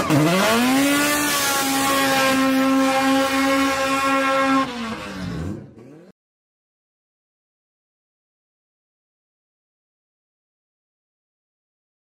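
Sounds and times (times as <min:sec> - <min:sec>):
car engine revving: 0:00.0 - 0:06.1.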